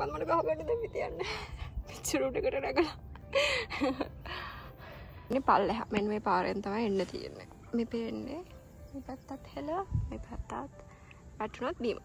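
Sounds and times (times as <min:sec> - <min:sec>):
woman laughing breathily: 0:03.2 - 0:04.9.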